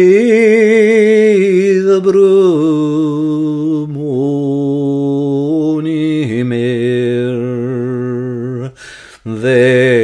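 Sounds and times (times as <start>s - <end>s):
man singing unaccompanied: 0.0s - 10.0s.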